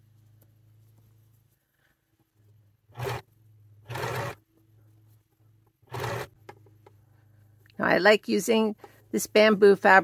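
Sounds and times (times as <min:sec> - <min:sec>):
sewing machine stitching: 0:02.9 - 0:04.4, 0:05.8 - 0:06.4.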